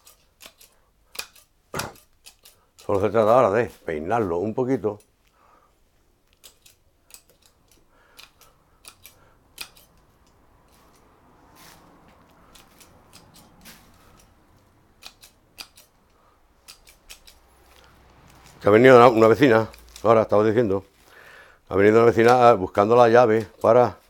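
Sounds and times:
shears snipping twigs: 0.0 - 5.2, 6.3 - 20.7, 21.9 - 24.0.

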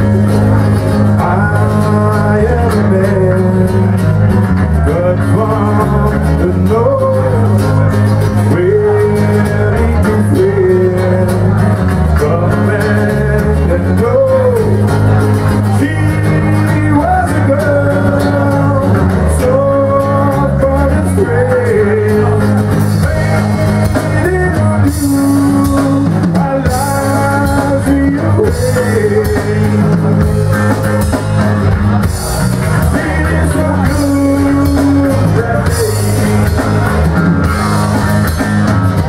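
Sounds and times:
person singing: 0.0 - 38.4
rock band playing live: 0.0 - 39.0.

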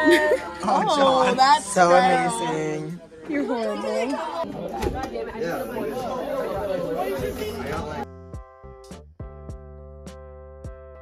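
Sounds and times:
group chatter: 0.0 - 8.1.

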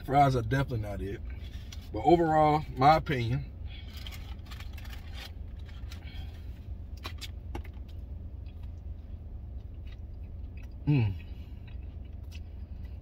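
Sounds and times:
vehicle engine and air conditioning hum: 0.0 - 13.0.

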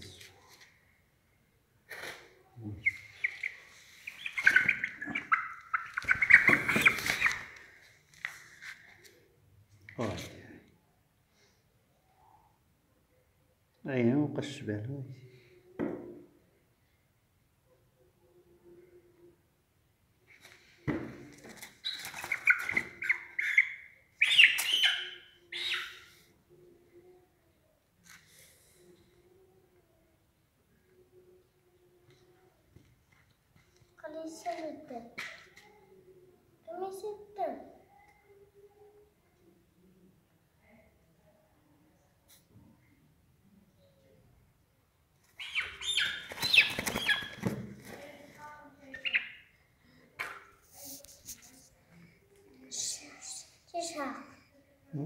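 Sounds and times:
chicken squawking: 2.8 - 7.6, 21.9 - 26.0, 45.4 - 47.4.

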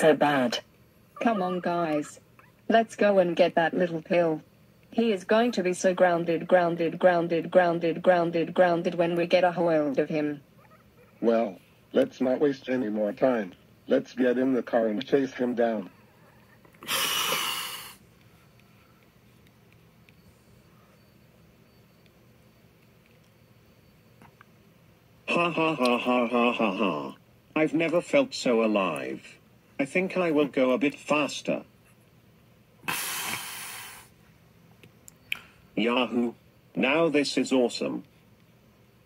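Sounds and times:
breathy hissing mouth noise: 16.8 - 18.0, 32.8 - 34.2.

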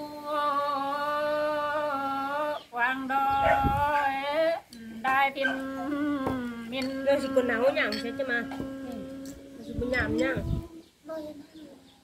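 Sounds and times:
woman singing unaccompanied: 0.0 - 11.1.

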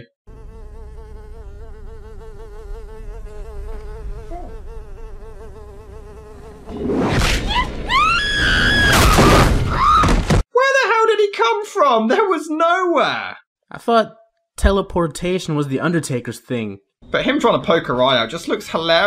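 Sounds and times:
woman screaming: 7.4 - 10.2.

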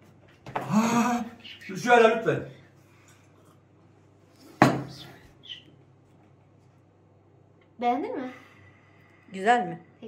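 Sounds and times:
glass knocking on table: 4.6 - 4.9.

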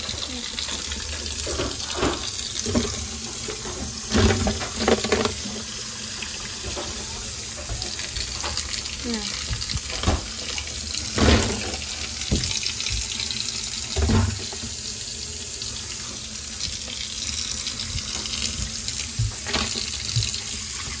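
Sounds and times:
water running into a sink: 0.0 - 21.0.

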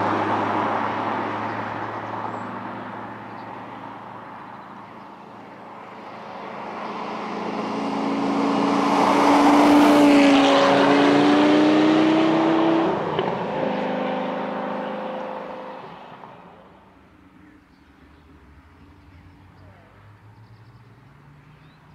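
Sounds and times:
car engine passing by: 0.0 - 17.0.

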